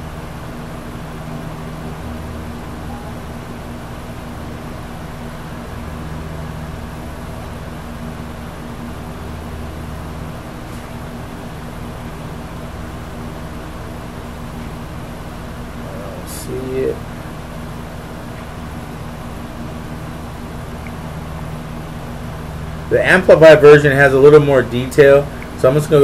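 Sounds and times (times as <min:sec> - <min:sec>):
low mechanical hum: 0:00.0 - 0:26.0.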